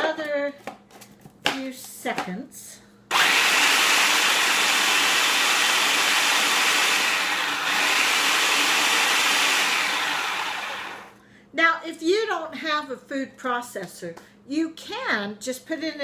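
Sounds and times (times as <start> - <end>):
food processor motor grinding: 3.1 - 11.2.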